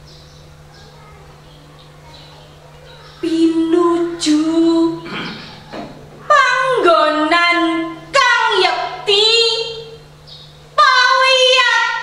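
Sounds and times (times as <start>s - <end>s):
woman reciting in sung delivery: 2.9s - 12.0s.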